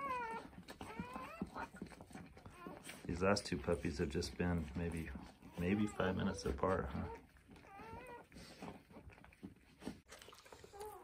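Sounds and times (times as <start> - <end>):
dog whimpering: 0.0 - 9.7
faint dog licking: 0.0 - 11.0.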